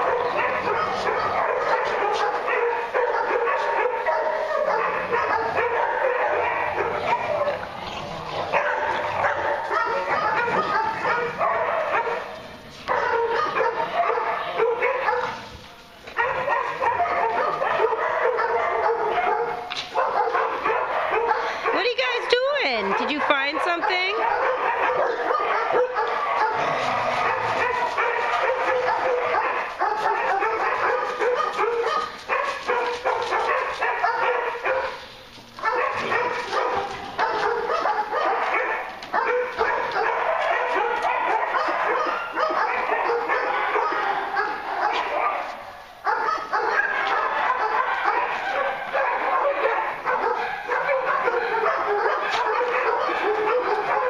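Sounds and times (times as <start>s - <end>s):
dogs barking: 0.0s - 54.0s.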